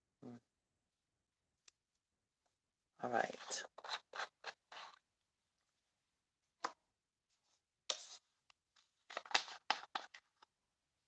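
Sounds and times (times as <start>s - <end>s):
plastic lid threads scraping: 3.4s - 5.0s.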